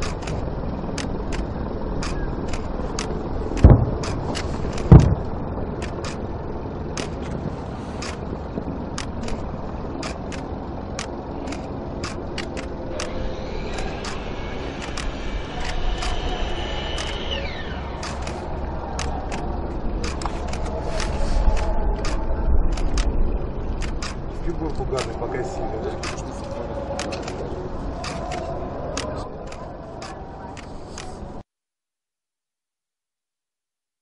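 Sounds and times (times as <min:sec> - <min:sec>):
low outdoor rumble: 0:00.0 - 0:31.4
fireworks crackling pops: 0:02.6 - 0:05.3
camera shutters clicking: 0:05.8 - 0:06.2, 0:08.0 - 0:08.2, 0:10.0 - 0:14.2, 0:17.0 - 0:17.2, 0:18.0 - 0:18.4, 0:19.0 - 0:23.1, 0:26.0 - 0:31.2.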